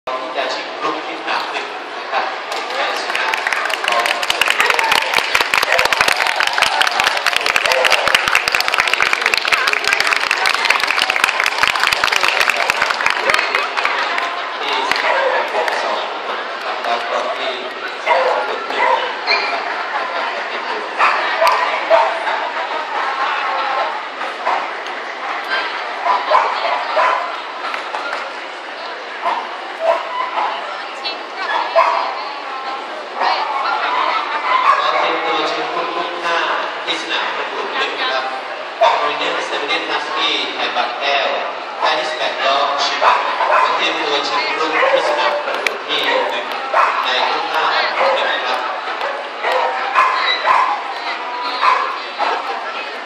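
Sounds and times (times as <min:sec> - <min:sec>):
crowd chatter: 0:00.0 - 0:53.0
babble of many voices: 0:00.1 - 0:53.0
dog barking: 0:18.1 - 0:19.5, 0:21.0 - 0:22.2, 0:26.1 - 0:27.3, 0:29.2 - 0:30.6, 0:31.5 - 0:32.1, 0:34.5 - 0:35.1, 0:43.0 - 0:43.8, 0:44.7 - 0:45.4, 0:46.1 - 0:47.1, 0:49.0 - 0:50.8, 0:51.6 - 0:52.4.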